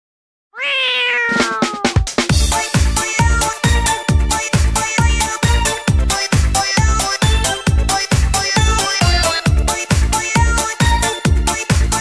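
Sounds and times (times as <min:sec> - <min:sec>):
cat meowing: 0:00.6 - 0:02.2
dance track drum beats: 0:01.3 - 0:03.3.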